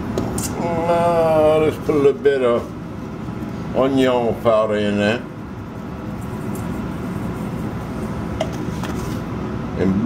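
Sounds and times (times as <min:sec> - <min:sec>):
spice shaken into metal bowl: 0:05.6 - 0:09.2.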